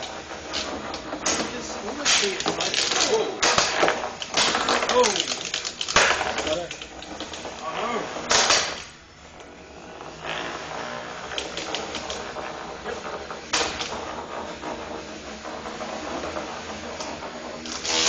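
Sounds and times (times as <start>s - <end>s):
combat robots clattering: 0.0s - 9.0s.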